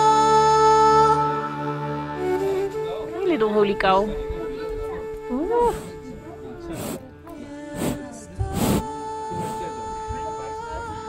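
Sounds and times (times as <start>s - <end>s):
background music with held notes: 0.0s - 11.0s
calf snuffling: 5.6s - 6.0s, 6.6s - 7.1s, 7.7s - 9.7s.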